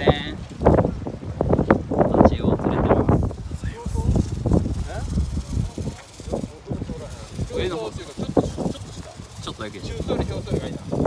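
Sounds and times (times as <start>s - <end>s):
wind buffeting microphone: 0.0s - 11.0s
voices talking: 2.0s - 11.0s.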